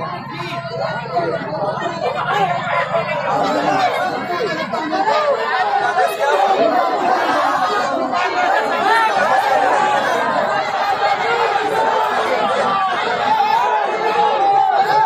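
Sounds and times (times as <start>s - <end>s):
crowd talking: 0.0s - 15.0s.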